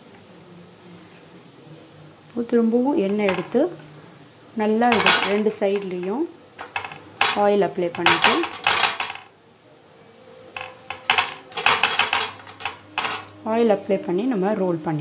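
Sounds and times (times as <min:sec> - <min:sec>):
metal clinking on steel plate: 0:03.0 - 0:03.9, 0:04.6 - 0:09.3, 0:10.6 - 0:13.3.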